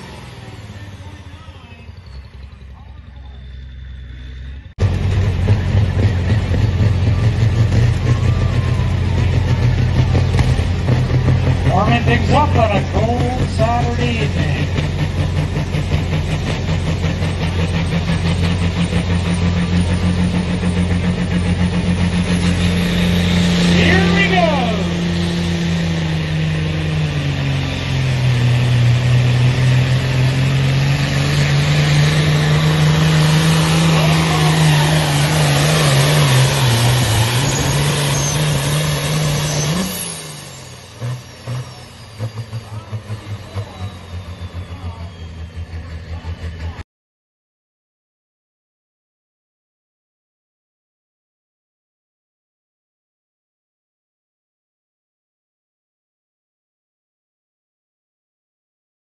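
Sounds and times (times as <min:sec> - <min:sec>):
tractor diesel engine under load: 0:00.0 - 0:46.8.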